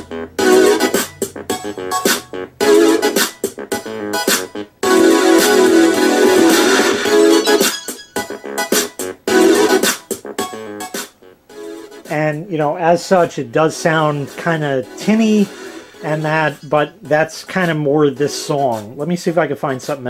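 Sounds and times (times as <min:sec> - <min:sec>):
tinny electronic dance music: 0:00.0 - 0:20.0.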